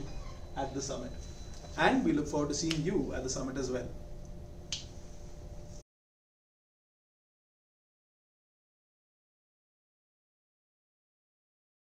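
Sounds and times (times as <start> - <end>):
low hum: 0.0 - 5.8.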